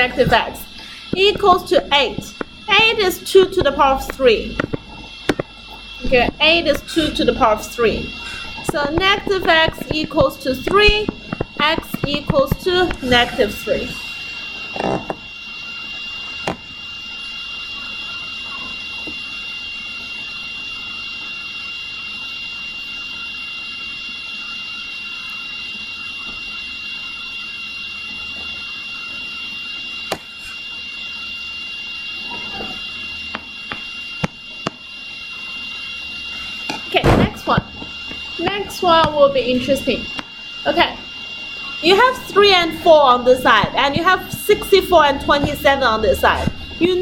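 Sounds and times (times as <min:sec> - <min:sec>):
high-pitched whine: 0:00.0 - 0:47.0.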